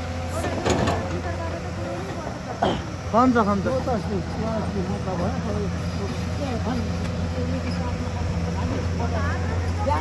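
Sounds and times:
diesel engine running under load: 0:00.0 - 0:10.0.

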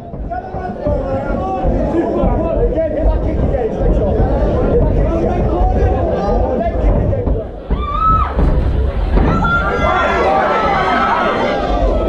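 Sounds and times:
crowd voices calling out: 0:07.6 - 0:12.0.

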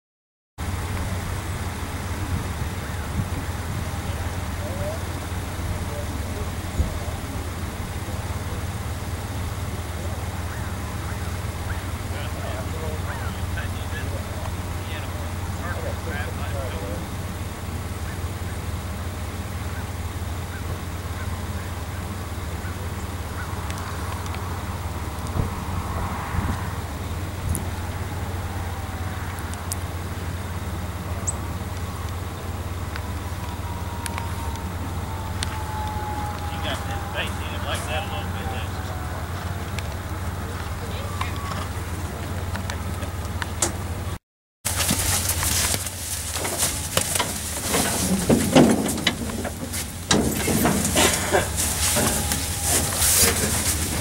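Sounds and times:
low outdoor rumble: 0:00.6 - 0:54.0
faint distant voices: 0:01.0 - 0:44.2.

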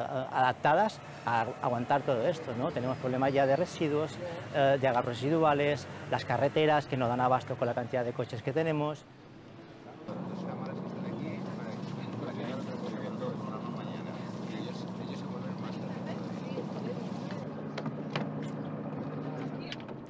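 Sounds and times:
boat engine idling: 0:10.1 - 0:20.0.

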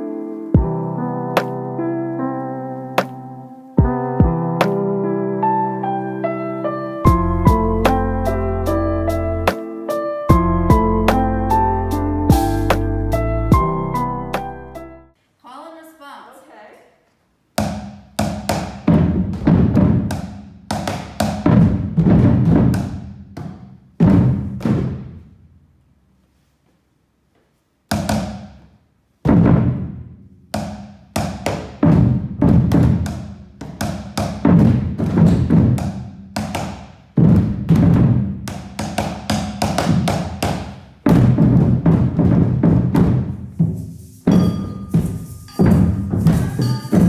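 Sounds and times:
sticks hitting bucket drums: 0:17.6 - 0:25.1, 0:30.6 - 0:47.0.

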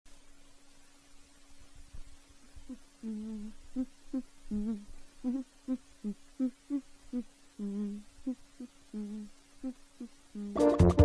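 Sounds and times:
person humming a tune: 0:02.6 - 0:11.0.

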